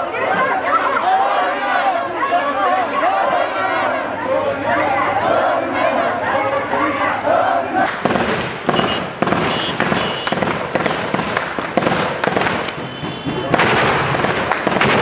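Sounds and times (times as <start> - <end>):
crowd voices: 0.0 - 15.0
rapid gunshots: 7.9 - 15.0.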